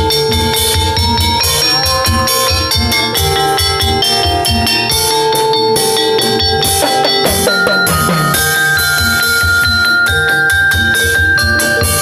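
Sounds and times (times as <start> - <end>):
street band melody: 0.0 - 12.0
cymbals: 0.5 - 12.0
marching tom drums: 7.2 - 8.8.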